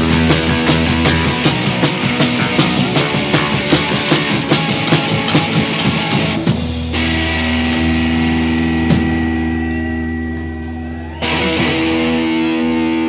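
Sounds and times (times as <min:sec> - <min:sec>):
drums pounding: 0:00.0 - 0:13.0
electric guitars: 0:00.0 - 0:13.0
guitar chord ringing: 0:00.0 - 0:13.0.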